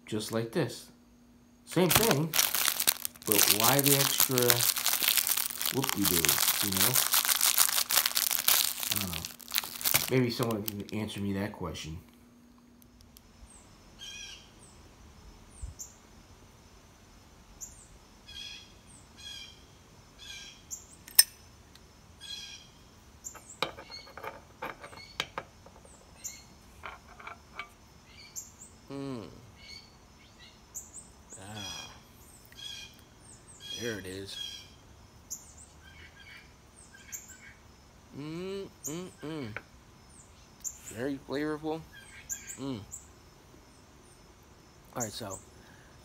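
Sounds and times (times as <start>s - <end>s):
small birds chirping: 1.8s - 11.0s, 24.9s - 26.7s, 27.8s - 46.0s.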